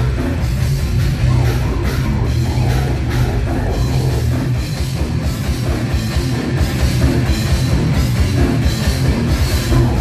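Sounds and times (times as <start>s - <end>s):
bass guitar: 0.0s - 10.0s
distorted guitars: 0.0s - 10.0s.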